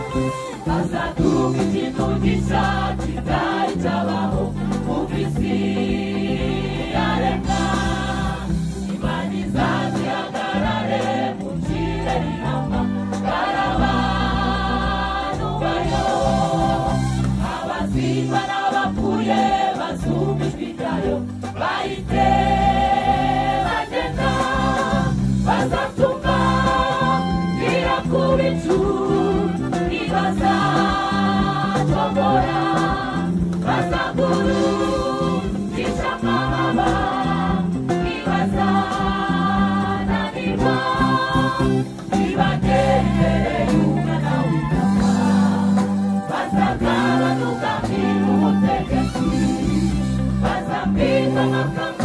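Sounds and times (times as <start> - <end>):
women's gospel choir singing: 0.1 - 52.0.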